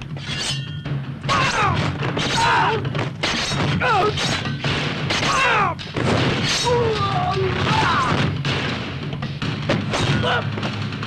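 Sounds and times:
sword hits and swishes: 0.0 - 5.7, 6.3 - 7.0, 9.8 - 10.4
background film score: 0.0 - 11.0.

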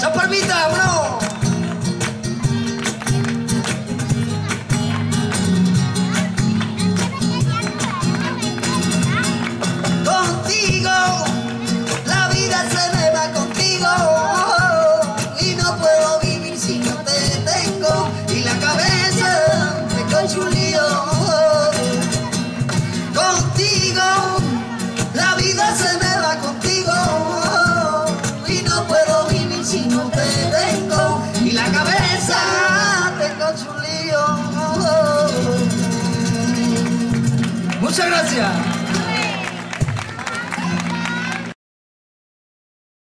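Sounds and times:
percussion beat: 0.0 - 41.5
strummed flamenco guitar: 0.0 - 41.6
person singing: 10.0 - 37.4.

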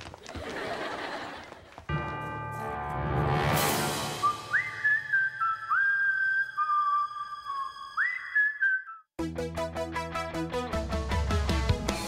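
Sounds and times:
held chord: 1.9 - 4.6
eerie whistled melody: 3.8 - 9.1.

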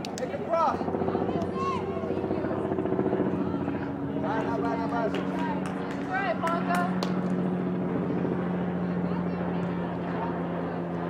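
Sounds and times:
pulsing engine drone: 0.0 - 11.0.

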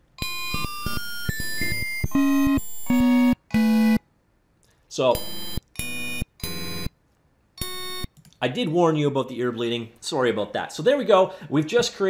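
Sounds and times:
synthesizer chiptune beeps: 0.2 - 4.0, 5.2 - 6.9.

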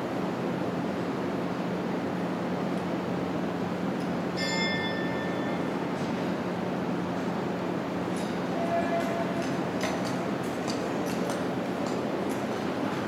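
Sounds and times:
hum and rush of ice rink hall: 0.0 - 13.0
high metallic ring: 4.4 - 5.9.

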